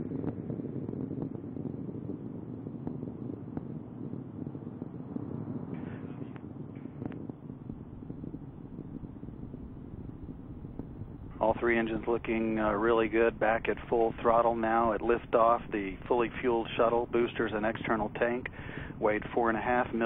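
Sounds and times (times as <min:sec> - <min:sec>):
distant rocket roar: 0:00.0 - 0:20.0.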